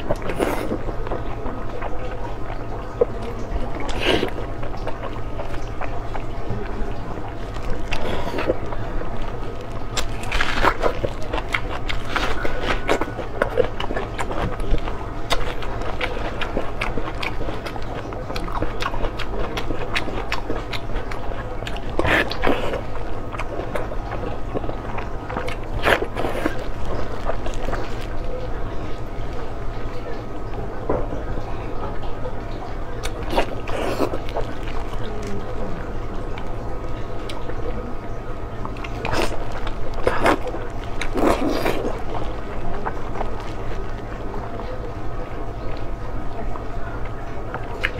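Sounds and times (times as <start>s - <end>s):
biting and chewing food: 0.0s - 47.9s
steady low hum: 0.0s - 47.9s.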